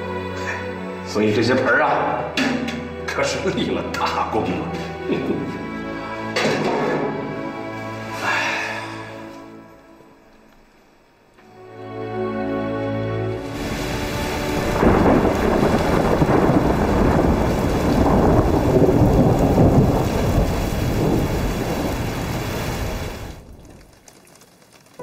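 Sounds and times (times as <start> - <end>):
heavy rain: 7.8 - 9.2, 13.2 - 25.0
thunder rumbling: 13.5 - 23.9.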